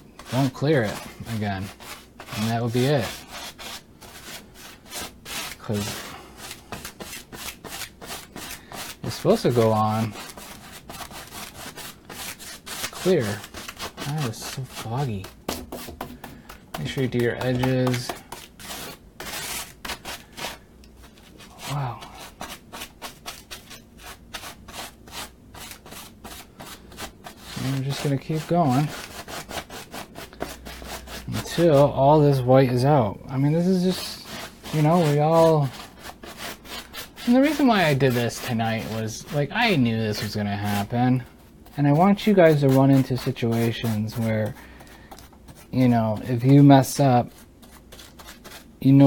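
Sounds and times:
paintbrush strokes on canvas: 0.2 - 32.8, 33.5 - 49.0.

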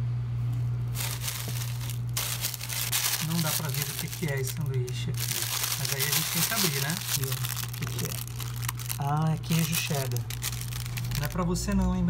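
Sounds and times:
steady low hum: 0.0 - 12.0
plastic wrapping crinkling: 0.9 - 11.8.

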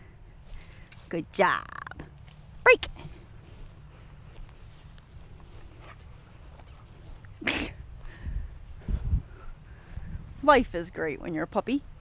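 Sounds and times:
steady low rumble: 0.0 - 12.0
person sneezing: 7.4 - 7.8.

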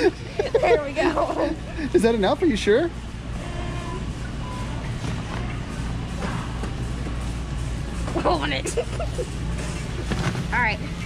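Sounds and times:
faint background music: 0.0 - 11.0
store hum: 0.0 - 11.0.

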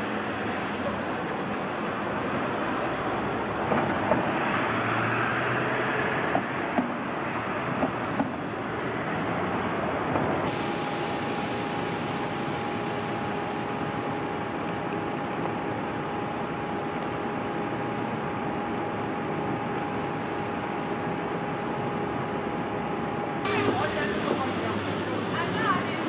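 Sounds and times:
bus engine idling: 0.0 - 26.0
constant whining tone: 5.9 - 26.0.

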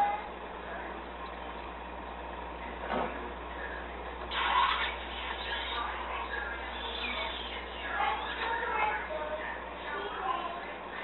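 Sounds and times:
constant low hum: 0.0 - 11.0.

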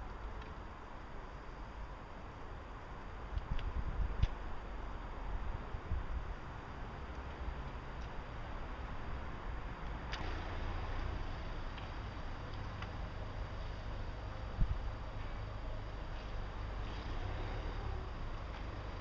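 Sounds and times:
wind rumble on microphone: 0.0 - 13.2, 13.9 - 19.0.

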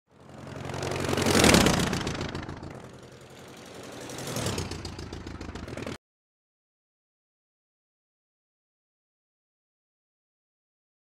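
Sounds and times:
engine humming and rushing: 0.1 - 6.0.

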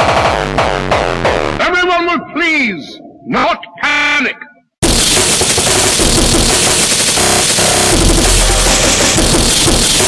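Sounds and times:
distorted breakcore track: 0.0 - 1.6, 4.8 - 10.0.

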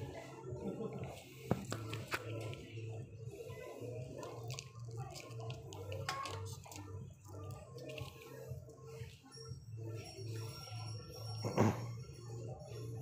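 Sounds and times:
background music: 0.0 - 13.0
faint voices: 0.0 - 13.0.

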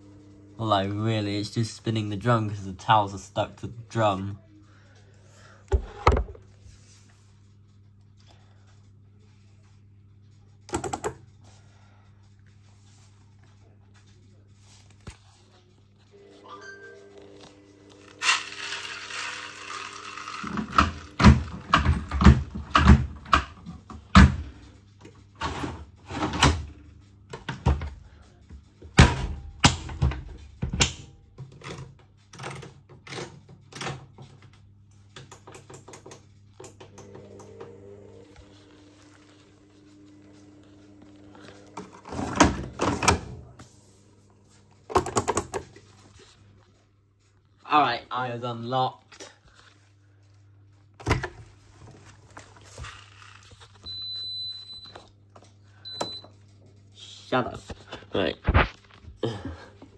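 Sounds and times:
washing machine motor hum: 0.0 - 58.3.

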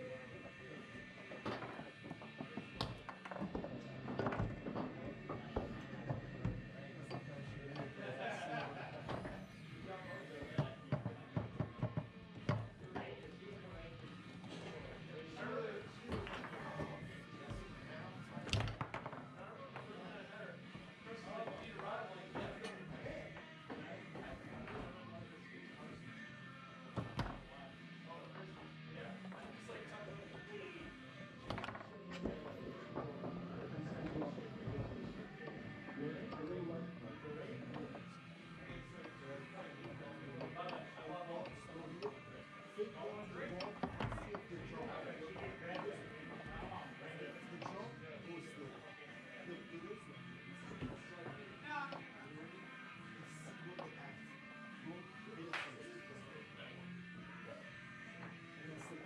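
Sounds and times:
background music: 0.0 - 59.0
voices: 0.0 - 59.0
foosball rods banging table: 18.3 - 19.9, 26.9 - 27.5, 31.4 - 36.7, 43.4 - 46.7.

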